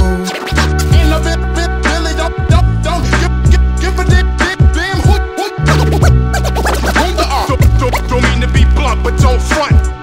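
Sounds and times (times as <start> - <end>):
turntable scratching: 0.0 - 1.2, 4.8 - 9.0
hip hop beat with bass and drums: 0.0 - 10.0.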